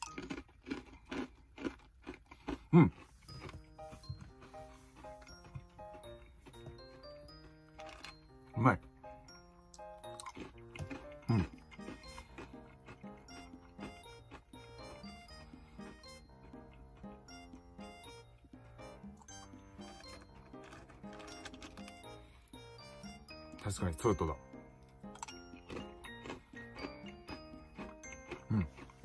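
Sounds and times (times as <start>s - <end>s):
banana chips crunching: 0.0s - 8.2s, 10.0s - 15.1s, 19.8s - 23.1s, 25.0s - 29.0s
background music: 0.0s - 29.0s.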